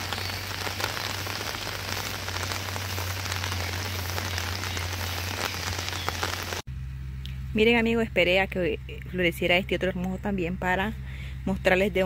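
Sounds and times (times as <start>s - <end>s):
rain falling: 0.0s - 6.7s
low steady hum: 0.0s - 12.0s.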